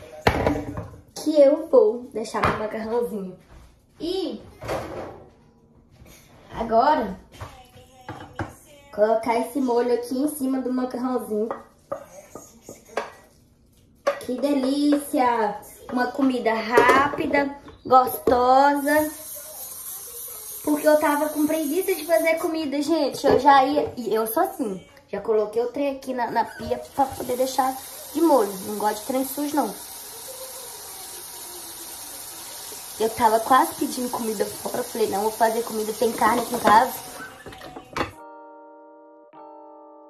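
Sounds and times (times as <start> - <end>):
tap water running into sink: 18.8 - 22.5, 26.6 - 38.1.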